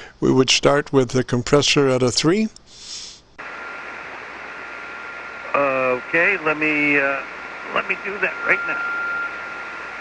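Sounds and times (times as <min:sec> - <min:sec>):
radio static hiss: 0:02.6 - 0:10.0
faint steady whistle: 0:03.6 - 0:10.0.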